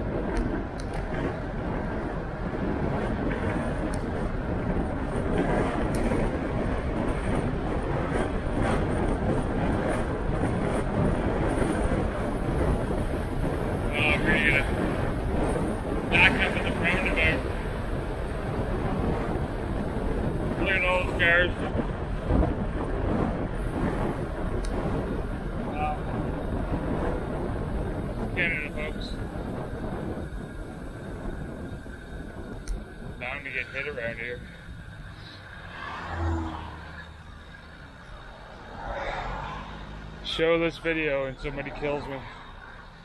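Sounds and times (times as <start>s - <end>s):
bicycle tyre road noise: 0.0s - 43.0s
wind buffeting microphone: 0.0s - 43.0s.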